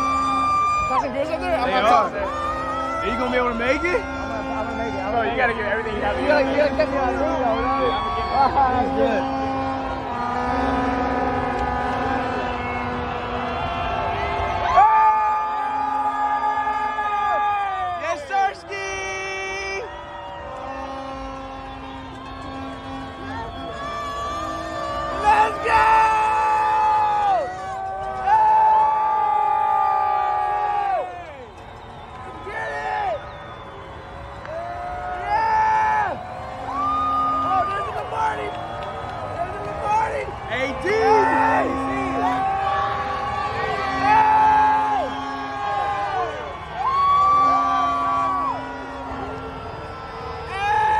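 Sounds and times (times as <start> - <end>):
crowd cheering and whooping: 0.0 - 50.9
police sirens wailing: 0.0 - 50.9
siren rising: 5.0 - 10.8.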